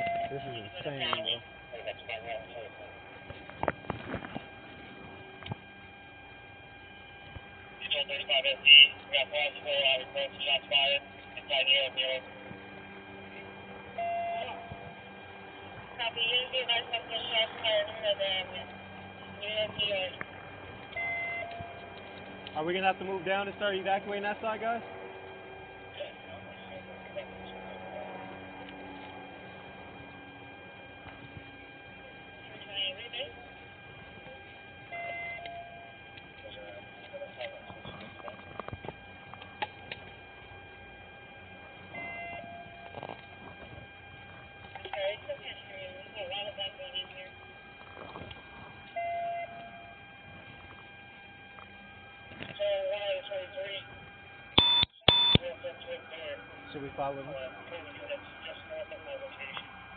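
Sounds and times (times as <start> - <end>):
loud electronic tones: 0.0 - 59.9
steady electronic hum: 0.0 - 59.9
short beep: 54.6 - 55.4.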